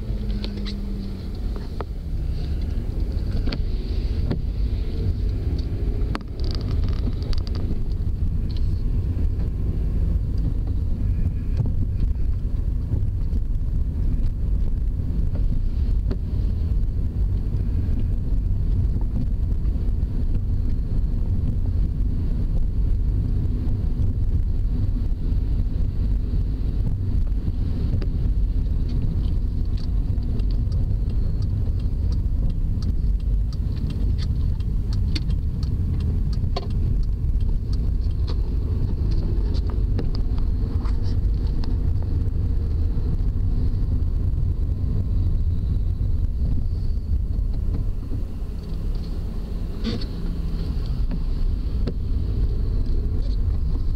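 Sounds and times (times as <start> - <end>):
car engine and tyre rumble: 0.0 - 53.9.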